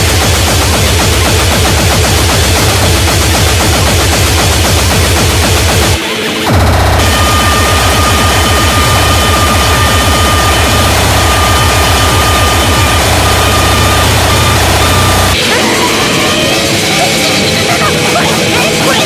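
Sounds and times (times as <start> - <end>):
fast distorted kick drums: 0.0 - 16.1
noisy synth layers: 0.0 - 19.0
held high synth tone: 6.5 - 18.2.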